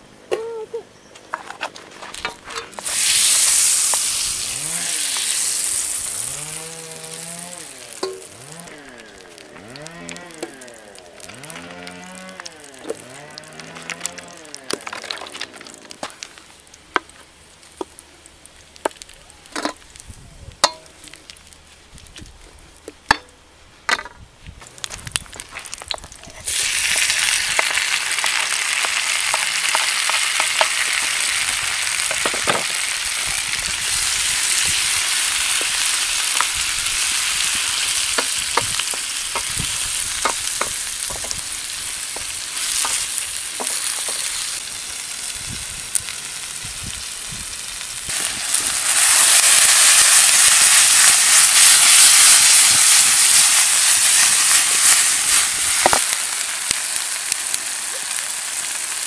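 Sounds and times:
food sizzling in a pan: 0:02.6 - 0:15.2, 0:26.3 - 0:59.0.

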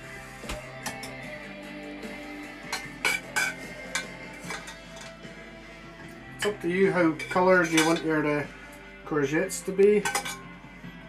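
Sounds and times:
background music: 0:00.0 - 0:11.0
metal spoon scraping a saucepan: 0:02.4 - 0:05.3, 0:06.4 - 0:08.1, 0:10.0 - 0:10.5.

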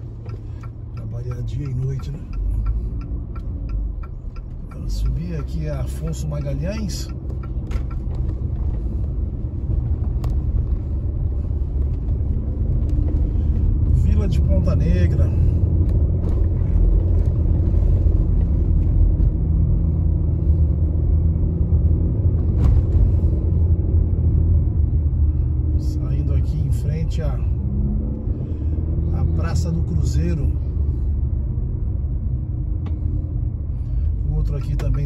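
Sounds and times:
car engine and tyre rumble: 0:00.0 - 0:35.0.

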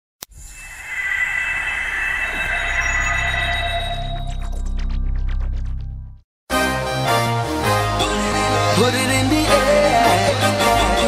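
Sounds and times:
shimmering hissing swell: 0:00.3 - 0:04.4
low rumble: 0:00.3 - 0:06.2.

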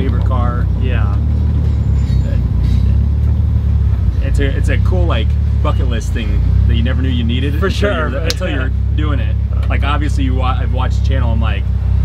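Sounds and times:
car engine drone inside cabin: 0:00.0 - 0:12.0.

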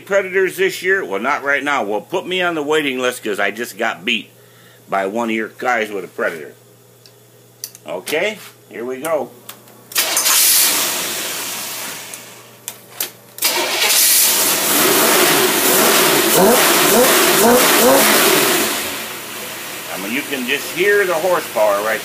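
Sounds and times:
engine free-revving: 0:13.4 - 0:19.9.

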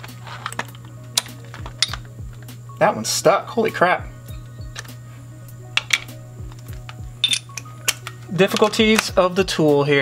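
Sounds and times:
background music with steady beat: 0:00.0 - 0:10.0
metal socket clinks: 0:00.4 - 0:02.1, 0:05.8 - 0:09.1.

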